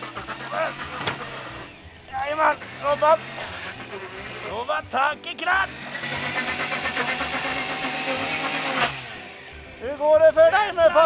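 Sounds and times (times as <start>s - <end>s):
chainsaw scraping wooden siding: 0.0s - 11.0s.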